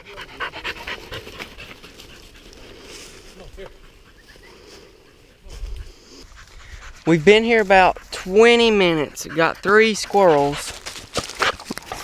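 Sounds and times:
dog panting rapidly: 0.0s - 2.8s, 3.5s - 12.0s.

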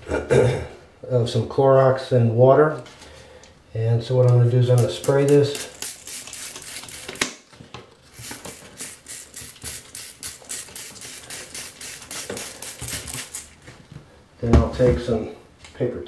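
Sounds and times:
spray bottle hissing sprays: 5.0s - 7.2s, 8.1s - 13.5s.

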